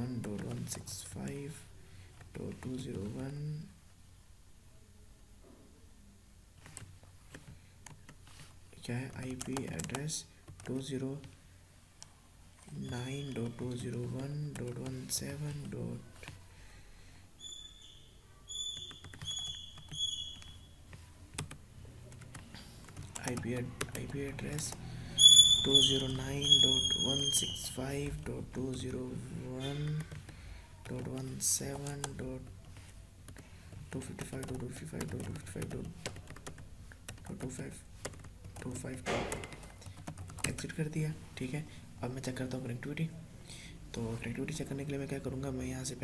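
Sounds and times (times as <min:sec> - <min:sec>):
high-pitched chirps: 0:17.4 - 0:20.9, 0:25.0 - 0:27.8
keyboard keys clicking: 0:18.6 - 0:24.8, 0:33.3 - 0:40.7.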